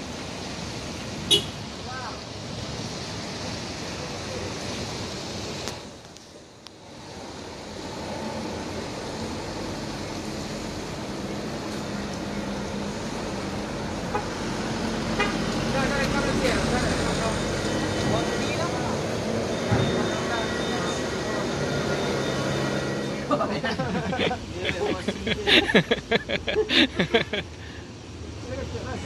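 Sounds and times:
tyres on wet road: 0.0s - 29.0s
vehicle engines running: 0.0s - 29.0s
car horn tooting: 1.3s - 1.6s, 15.2s - 15.4s
voices: 15.2s - 27.3s.

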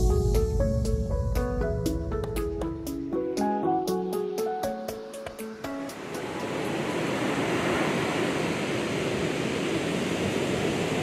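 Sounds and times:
music with plucked notes: 0.0s - 6.0s
ocean surf breaking: 4.7s - 11.0s.

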